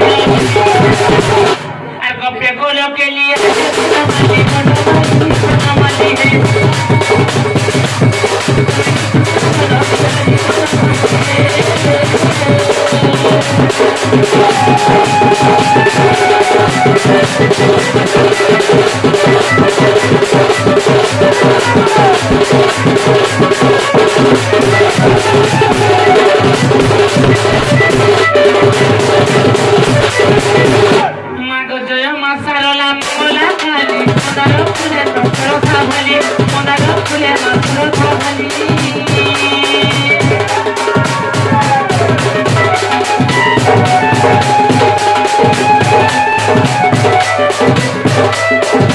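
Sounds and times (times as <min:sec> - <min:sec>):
barrel drum beaten fast: 0:00.0 - 0:01.7, 0:03.3 - 0:31.1, 0:32.9 - 0:48.9
sliding melodic tones: 0:05.7 - 0:31.0, 0:39.6 - 0:48.9.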